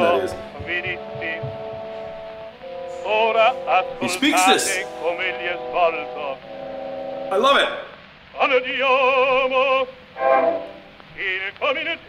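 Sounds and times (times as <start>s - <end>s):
operatic baritone half-spoken phrases: 3.7s - 6.4s, 7.3s - 8.0s.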